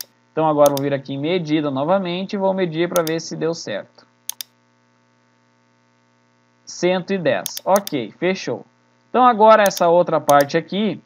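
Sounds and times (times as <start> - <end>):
faint electrical hum: 0.0 - 11.0
computer mouse clicks: 0.7 - 0.9, 3.0 - 3.2, 4.3 - 4.5, 7.5 - 8.0, 9.7 - 10.5.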